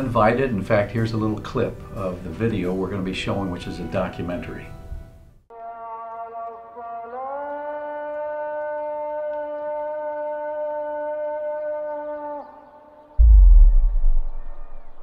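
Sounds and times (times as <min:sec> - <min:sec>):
deep low boom: 0:13.2 - 0:15.0.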